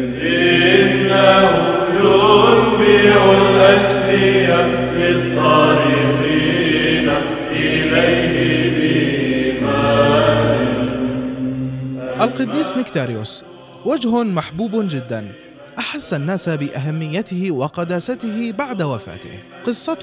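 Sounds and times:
chanted sung melody: 0.0 - 20.0
held vocal drone: 0.0 - 20.0.

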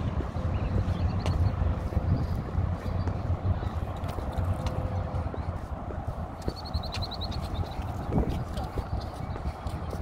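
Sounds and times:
footsteps on wooden boardwalk: 0.0 - 10.0
wind rumble on microphone: 0.0 - 10.0.

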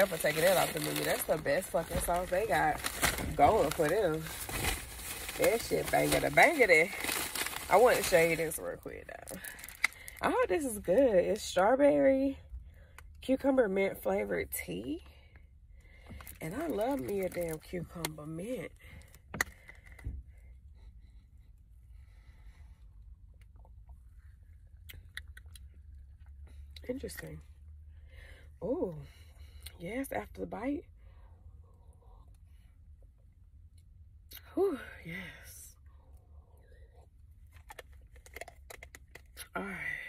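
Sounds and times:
low hum inside a car: 0.0 - 40.0.

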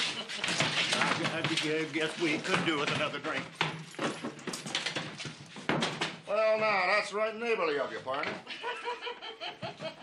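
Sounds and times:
scuffs and knocks of people moving: 0.0 - 6.5.

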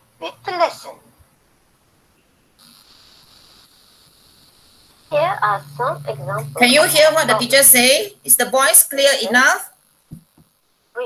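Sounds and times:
faint high-pitched hiss: 0.0 - 11.0.

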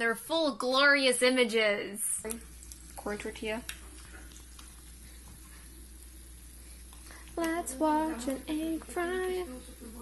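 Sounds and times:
egg sizzling in a pan: 2.0 - 10.0
small crackles: 2.2 - 9.9
low hum: 2.2 - 10.0.

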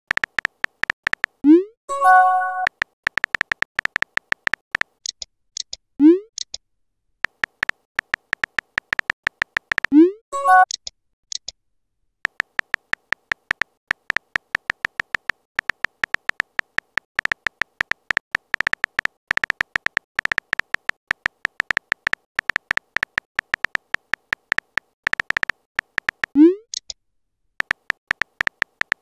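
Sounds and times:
simulated keyboard tap clicks: 0.1 - 1.4, 2.6 - 6.6, 7.2 - 10.0, 12.2 - 27.0, 27.6 - 29.0.

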